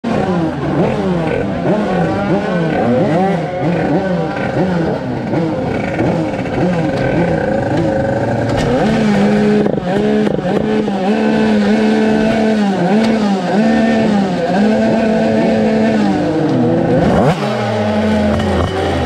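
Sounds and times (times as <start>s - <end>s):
two-stroke moped engine revving: 0.0s - 19.0s.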